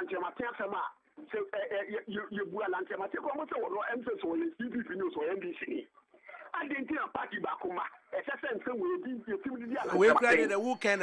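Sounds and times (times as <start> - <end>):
person talking: 8.6 - 11.0.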